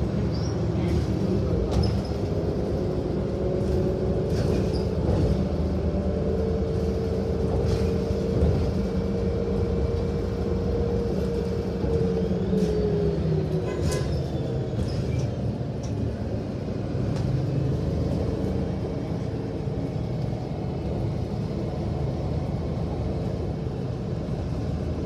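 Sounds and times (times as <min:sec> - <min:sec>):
bus engine and road rumble: 0:00.0 - 0:25.0.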